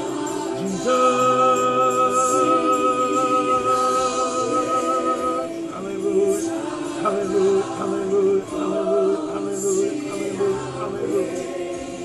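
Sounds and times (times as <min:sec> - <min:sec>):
group singing gospel: 0:00.0 - 0:12.0.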